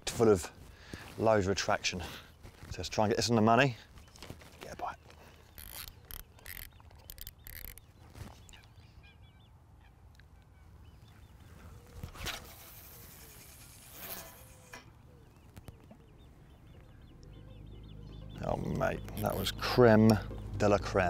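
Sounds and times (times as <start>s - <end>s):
birds calling: 0.6s - 21.0s.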